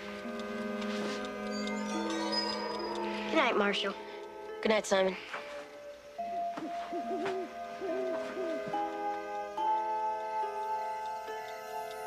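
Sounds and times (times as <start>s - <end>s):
soft background music: 0.0s - 12.0s
owl hooting: 6.6s - 9.3s.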